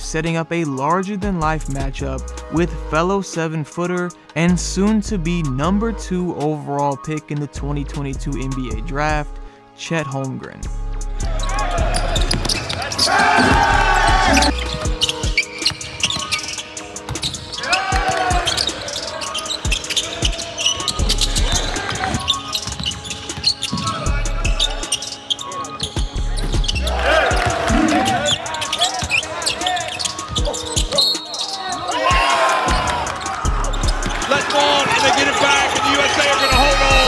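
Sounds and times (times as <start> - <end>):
music with deep bass: 1.2 - 3.2, 4.4 - 6.4, 7.5 - 9.5, 10.6 - 12.4, 13.4 - 15.4, 20.9 - 22.4, 23.9 - 24.9, 25.8 - 28.5, 32.1 - 34.5, 36.5 - 37.0
voices calling: 11.4 - 37.0.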